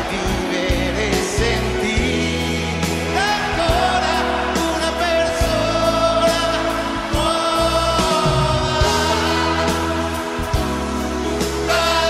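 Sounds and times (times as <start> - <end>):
steady drum beat: 0.0 - 12.0
sustained bass: 0.0 - 12.0.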